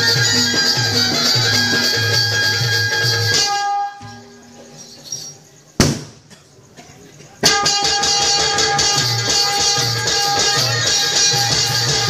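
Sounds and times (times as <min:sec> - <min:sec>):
music: 0:00.0 - 0:05.4, 0:07.4 - 0:12.0
loud sharp bang: 0:05.8 - 0:06.3.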